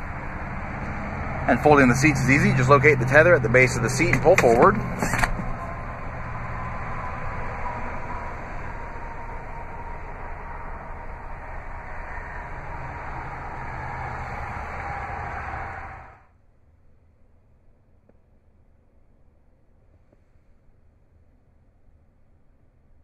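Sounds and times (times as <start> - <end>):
rushing background noise: 0.0 - 16.2.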